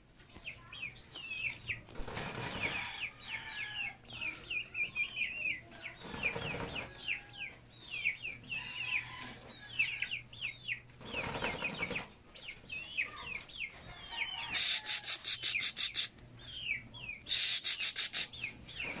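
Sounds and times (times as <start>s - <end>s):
birds chirping: 0.0s - 19.0s.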